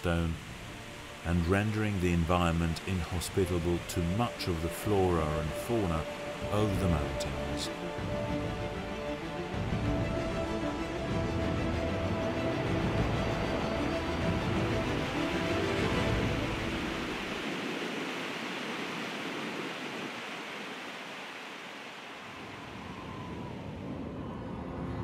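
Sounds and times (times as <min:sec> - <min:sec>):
soft music: 0:00.0 - 0:17.6
rushing mountain stream: 0:00.0 - 0:23.5.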